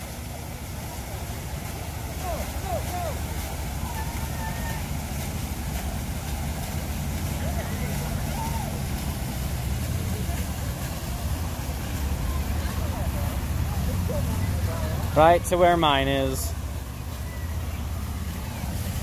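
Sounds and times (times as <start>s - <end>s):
faint distant voices: 0.0s - 19.0s
low outdoor rumble: 0.0s - 19.0s.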